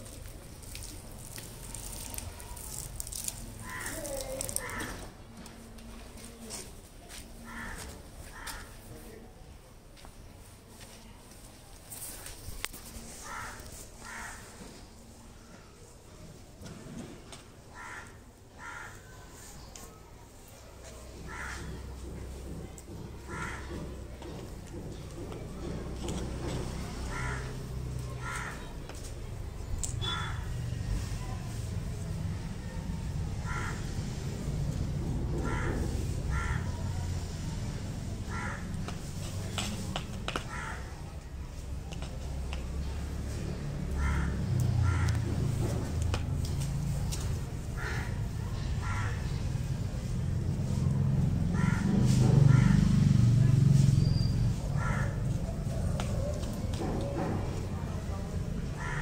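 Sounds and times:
crow cawing: 0:03.6 - 0:05.1, 0:07.4 - 0:08.8, 0:13.2 - 0:14.6, 0:17.7 - 0:19.2, 0:21.2 - 0:21.9, 0:23.2 - 0:24.4, 0:27.1 - 0:28.7, 0:30.0 - 0:30.5, 0:33.4 - 0:33.9, 0:35.4 - 0:37.0, 0:38.2 - 0:38.7, 0:40.5 - 0:41.0, 0:43.9 - 0:45.4, 0:47.8 - 0:49.4, 0:51.5 - 0:52.9, 0:54.7 - 0:55.3, 0:58.7 - 0:59.0.

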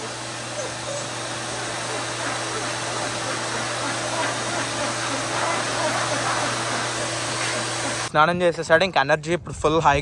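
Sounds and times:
pet grooming dryer blowing air: 0:00.0 - 0:08.1.

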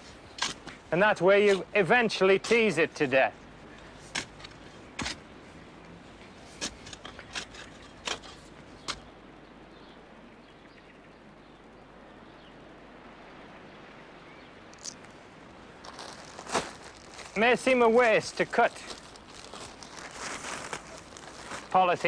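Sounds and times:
spade chopping into soil: 0:00.4 - 0:00.8, 0:04.1 - 0:05.2, 0:06.6 - 0:09.0.

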